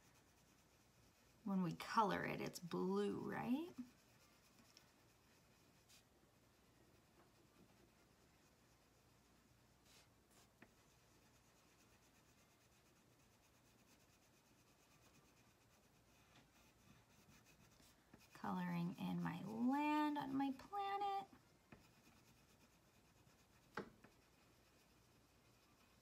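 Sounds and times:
crayon scratching on paper: 0.0 - 26.0
woman's voice: 1.5 - 3.9, 18.4 - 21.4.

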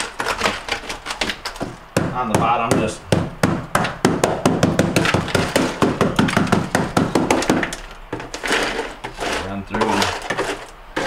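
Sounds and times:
putty knife chipping ice: 0.0 - 3.0, 4.8 - 11.0.

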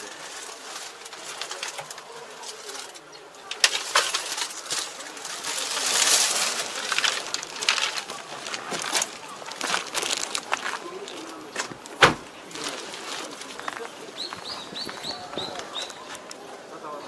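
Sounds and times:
rustling: 0.0 - 16.5
cab door clicks and knocks: 11.6 - 12.3.

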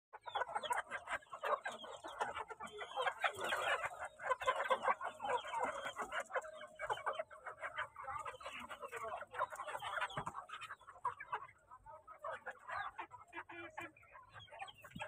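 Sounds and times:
chickens clucking: 0.1 - 15.0.

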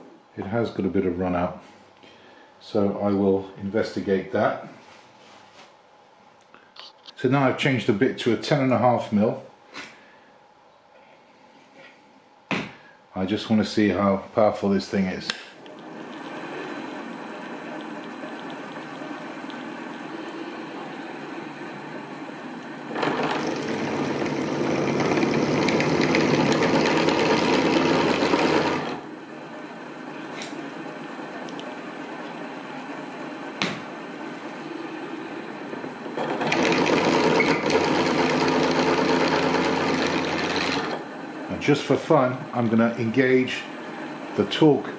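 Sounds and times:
faint high whine: 0.0 - 5.6, 12.8 - 44.9
drill cutting into steel: 22.8 - 29.1, 35.8 - 41.1.

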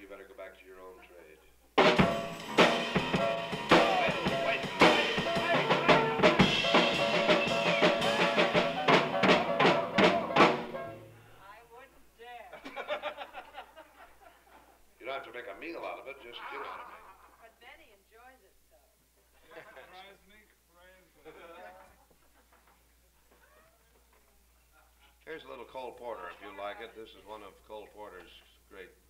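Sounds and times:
heavy drum strokes: 1.8 - 11.2
jazz trio playing: 1.8 - 11.3.

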